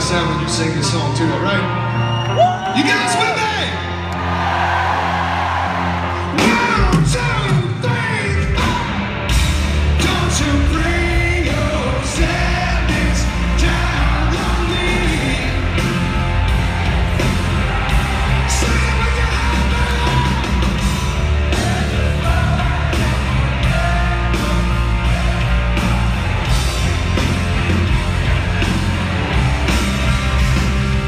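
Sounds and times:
rock band playing: 0.0 - 31.0
drums crashing: 6.3 - 31.0
crowd singing along: 10.0 - 15.7, 21.4 - 25.9.

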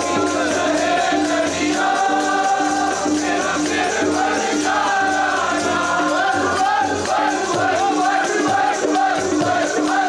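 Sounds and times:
harmonium: 0.0 - 10.0
steady drum beat: 0.0 - 10.0
voices singing together: 0.0 - 10.0.

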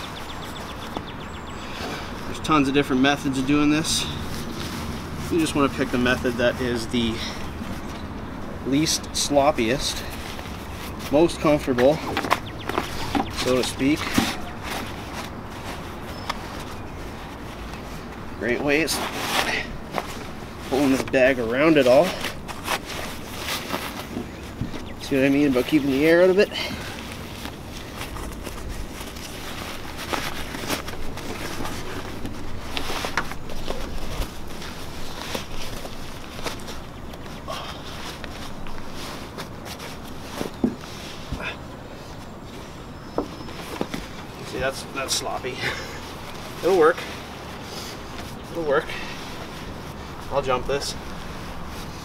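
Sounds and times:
nylon fabric rustling: 0.0 - 52.0.

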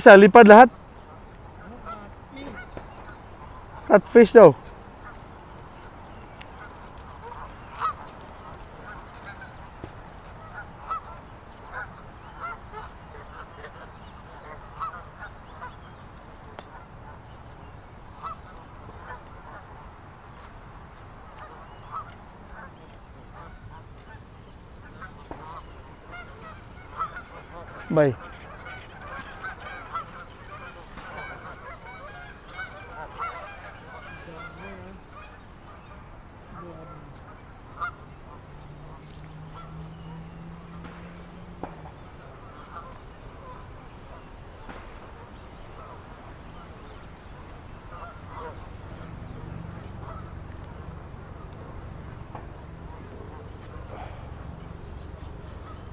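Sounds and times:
geese honking: 0.0 - 55.9
man speaking a word: 3.9 - 4.6, 27.8 - 28.2.

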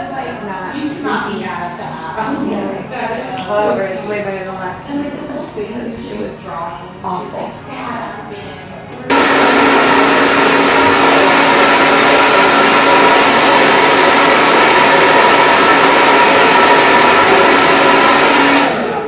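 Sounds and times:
hair dryer blowing: 9.1 - 19.0.

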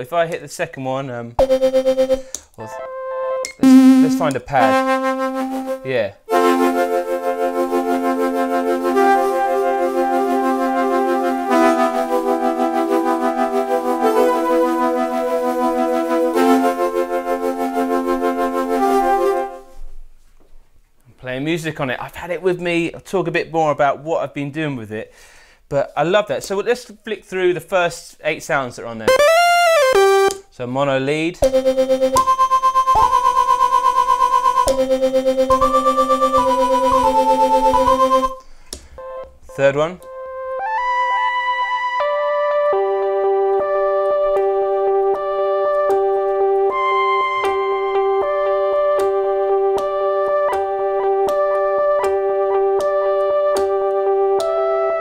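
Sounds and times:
synthesizer lead with fast pulsing: 1.4 - 5.8, 29.1 - 30.3, 31.4 - 38.4
synthesizer pad chords: 1.4 - 19.6, 29.1 - 30.4, 31.4 - 38.4, 40.0 - 55.0.

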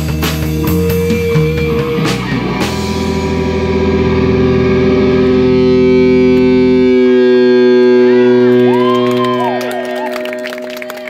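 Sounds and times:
distorted guitar chord ringing: 0.0 - 11.0
electric guitar feedback: 0.0 - 11.0.

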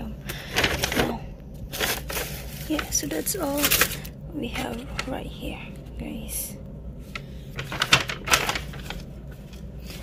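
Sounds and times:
paper bag and plastic rustling: 0.2 - 5.2, 7.1 - 10.0.

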